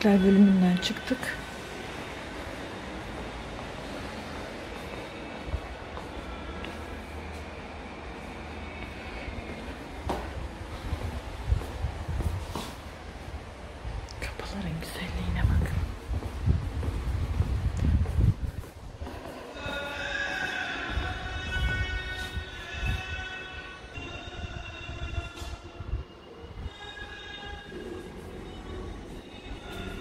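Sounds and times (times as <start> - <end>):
person chanting recitation: 19.0 - 25.8.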